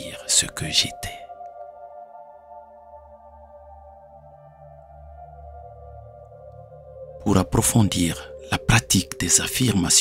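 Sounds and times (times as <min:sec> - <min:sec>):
soft ambient drone music: 0:00.0 - 0:10.0.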